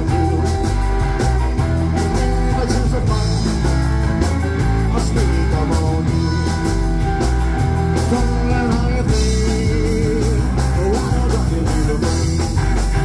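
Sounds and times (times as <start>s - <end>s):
live rock and roll band playing: 0.0s - 13.0s.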